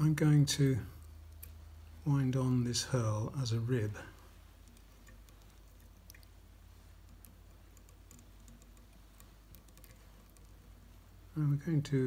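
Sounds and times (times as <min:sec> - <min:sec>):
faint handling ticks: 0:00.2 - 0:12.0.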